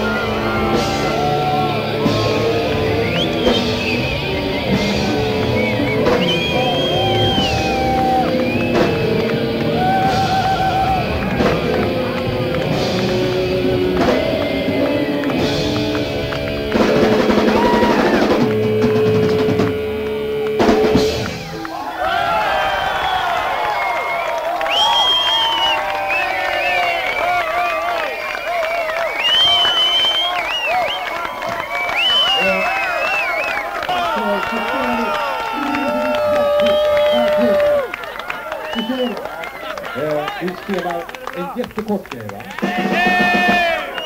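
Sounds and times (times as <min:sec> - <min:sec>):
rock band playing live: 0:00.0 - 0:21.7
crowd cheering and whistling: 0:00.0 - 0:44.0.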